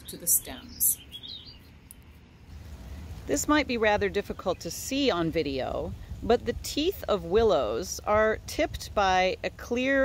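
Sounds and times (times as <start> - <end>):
faint bird chirp: 0.0 - 2.5.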